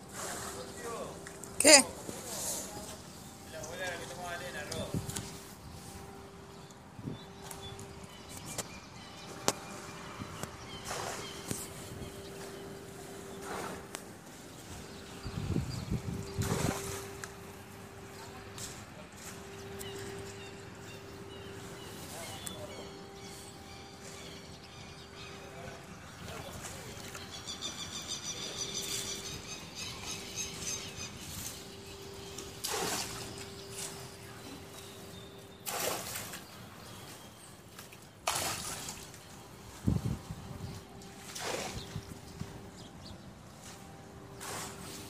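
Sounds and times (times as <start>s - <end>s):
water sloshing and splashing: 0.0s - 6.6s, 7.3s - 24.3s, 30.0s - 45.0s
faint steady hum: 0.0s - 45.0s.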